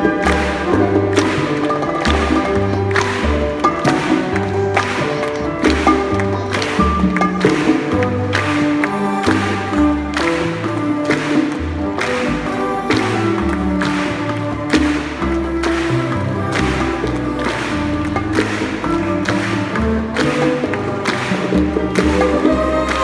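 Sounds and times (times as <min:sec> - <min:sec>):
latin jazz band with orchestra: 0:00.0 - 0:23.0
steady percussion beat: 0:00.0 - 0:23.0.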